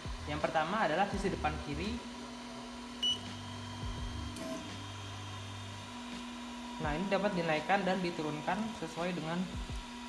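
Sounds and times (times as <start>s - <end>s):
fan hum: 0.0s - 10.0s
printer motors humming: 0.0s - 10.0s
short high beep: 3.0s - 3.4s.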